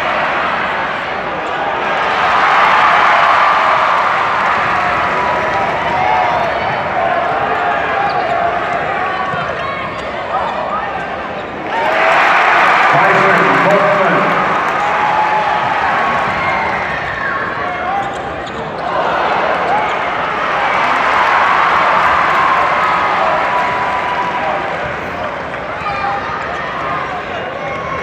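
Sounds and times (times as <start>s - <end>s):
arena crowd noise: 0.0s - 28.0s.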